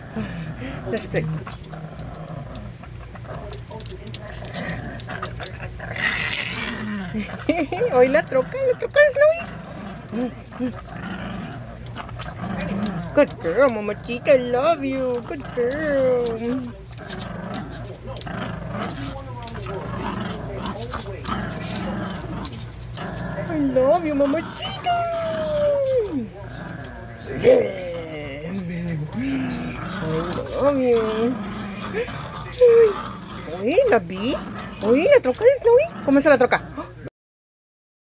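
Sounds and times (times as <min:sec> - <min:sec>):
small dog growling: 0:00.0 - 0:37.1
dog claws clicking on wood floor: 0:01.4 - 0:06.5, 0:11.7 - 0:24.1.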